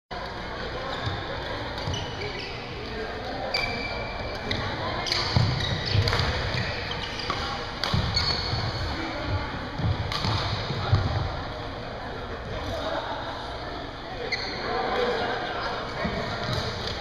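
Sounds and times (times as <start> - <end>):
background chatter: 0.1 - 17.0
shoes squeaking on court: 0.5 - 11.1, 14.2 - 17.0
racket hitting shuttlecock: 5.0 - 6.6, 7.2 - 8.5, 10.0 - 11.0.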